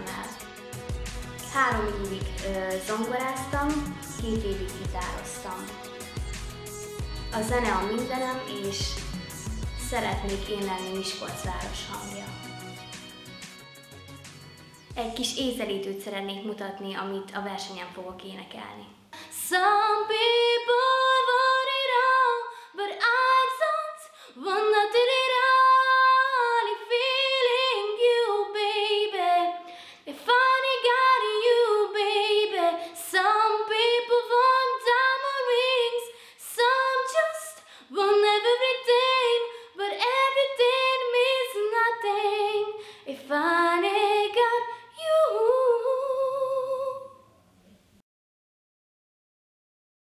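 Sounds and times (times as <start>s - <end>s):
girl singing unaccompanied: 0.0s - 0.6s, 1.4s - 6.2s, 7.0s - 12.5s, 17.8s - 47.2s
singer breathing: 24.1s - 24.4s, 29.6s - 30.1s, 36.1s - 36.4s, 37.6s - 37.9s, 42.8s - 43.1s.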